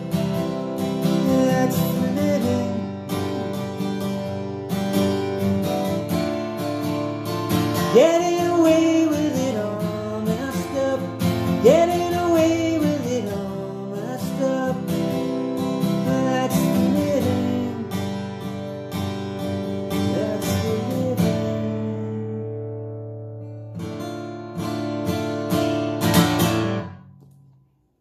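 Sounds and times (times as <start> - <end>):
acoustic guitar strumming chords: 0.0 - 27.5.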